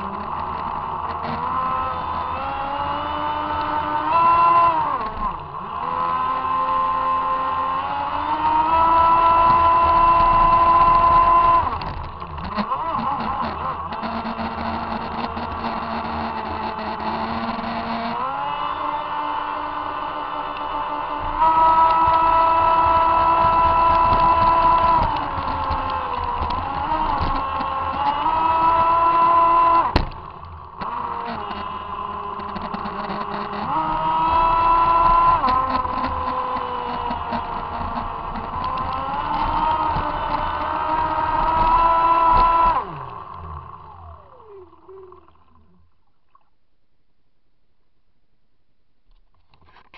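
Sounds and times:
electric motor whining: 0.0 - 46.0.

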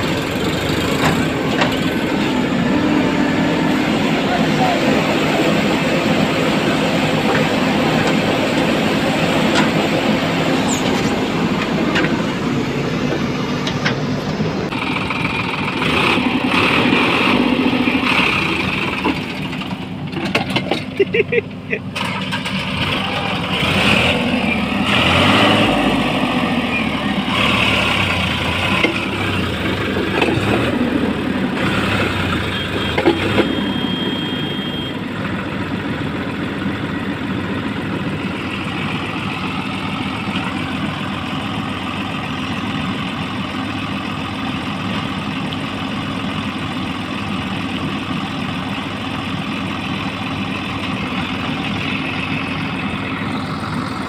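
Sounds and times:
backhoe loader engine: 0.0 - 54.0
tractor diesel engine under load: 0.0 - 54.0.

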